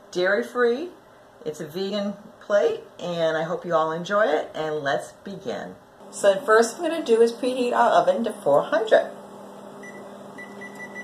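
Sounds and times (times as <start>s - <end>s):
oven low hum: 6.0s - 11.0s.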